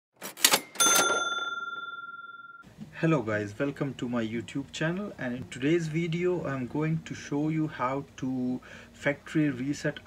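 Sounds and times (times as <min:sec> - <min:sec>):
bell ding ringing: 0:00.6 - 0:02.6.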